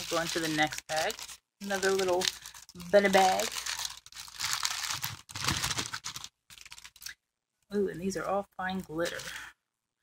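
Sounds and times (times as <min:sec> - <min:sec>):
plastic bag crinkling: 0:00.0 - 0:07.2.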